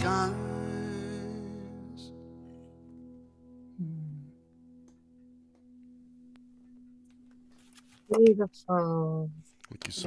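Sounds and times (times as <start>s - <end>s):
acoustic guitar chord: 0.0s - 4.8s.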